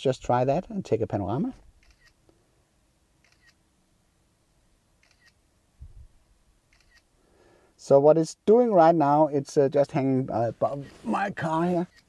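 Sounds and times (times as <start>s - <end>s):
faint camera shutter clicks: 1.8s - 2.4s, 3.2s - 3.6s, 5.0s - 5.4s, 6.7s - 7.1s
soft low thump: 5.8s - 6.2s.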